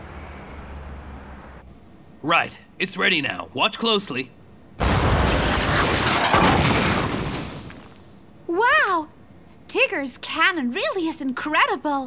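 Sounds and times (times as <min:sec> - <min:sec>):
cartoon cannon blast and explosion: 0:04.8 - 0:08.2.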